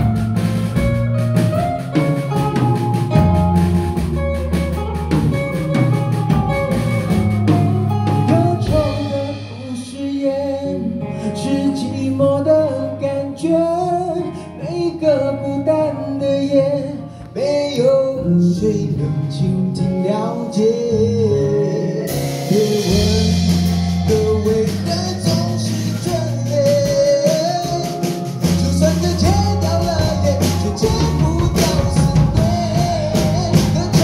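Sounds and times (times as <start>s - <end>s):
acoustic guitar: 0.0s - 34.0s
keyboard: 0.0s - 34.0s
live band playing a ballad: 0.0s - 34.0s
man singing: 8.1s - 34.0s.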